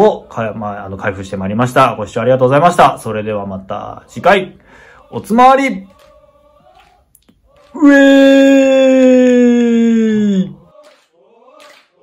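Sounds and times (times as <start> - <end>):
man's loud drawn-out cheer: 7.8 - 10.6.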